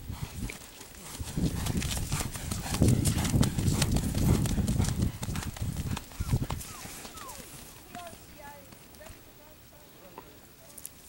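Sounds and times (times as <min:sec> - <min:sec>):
horse hoofbeats on soft dirt: 0:00.0 - 0:10.9.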